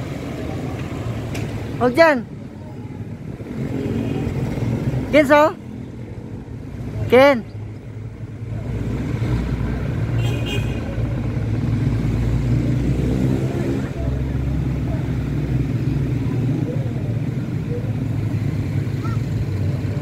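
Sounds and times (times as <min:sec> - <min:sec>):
city traffic rumble: 0:00.0 - 0:20.0
faint voices: 0:00.2 - 0:05.5, 0:13.4 - 0:20.0.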